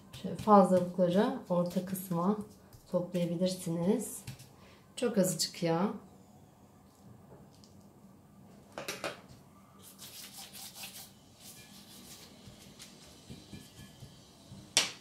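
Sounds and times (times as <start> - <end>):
pastry brush strokes: 9.8 - 14.1.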